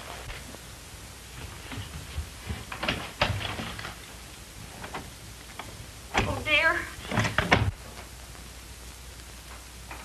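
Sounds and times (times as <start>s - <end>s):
footsteps crossing a room: 0.0s - 5.9s.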